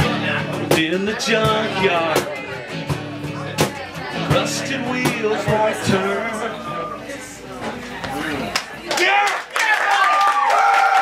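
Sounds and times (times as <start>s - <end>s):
audience clapping and cheering: 8.5s - 11.0s.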